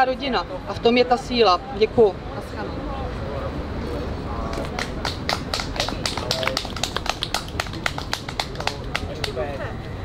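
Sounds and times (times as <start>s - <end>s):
scattered applause: 4.4s - 9.6s.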